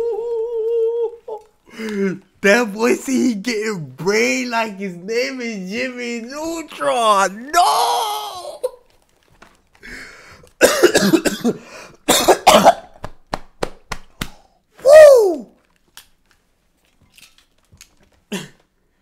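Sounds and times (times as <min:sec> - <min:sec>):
man coughing: 0:10.6 - 0:13.0, 0:18.3 - 0:18.6.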